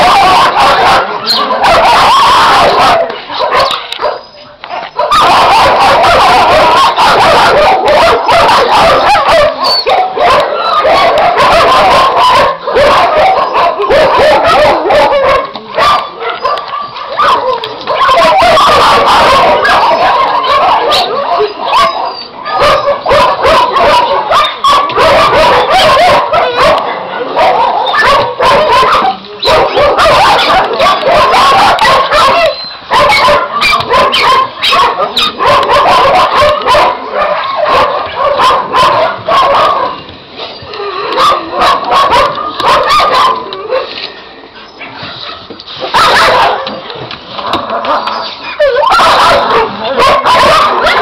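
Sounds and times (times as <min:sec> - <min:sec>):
dogs barking: 0:00.0 - 0:44.0, 0:44.8 - 0:51.0.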